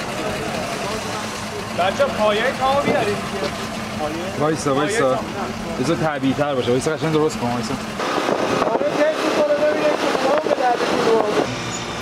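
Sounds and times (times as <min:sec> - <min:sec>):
vehicles rushing along road: 0:00.0 - 0:12.0
voices calling: 0:00.0 - 0:12.0.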